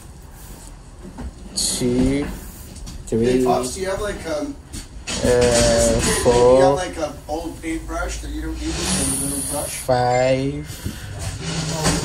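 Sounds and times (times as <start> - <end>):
high hiss: 7.6 - 9.9.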